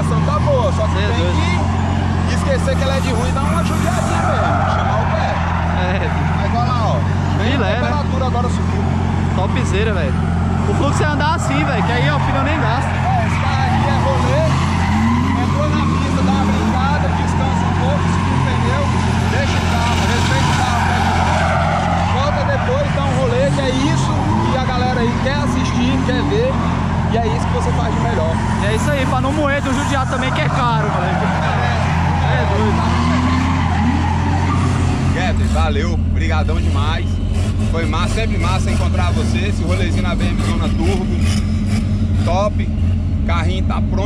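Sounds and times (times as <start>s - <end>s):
tyre squeals: 0.0s - 43.2s.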